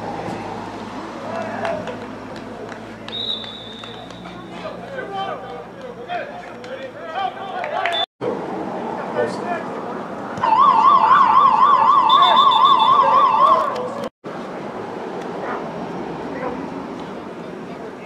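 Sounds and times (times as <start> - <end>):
siren fast warble: 10.4 - 13.7.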